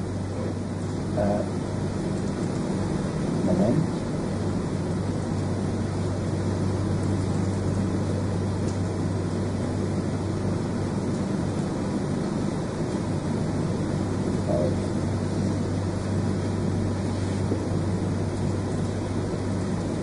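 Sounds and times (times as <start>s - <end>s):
low hum: 0.0s - 20.0s.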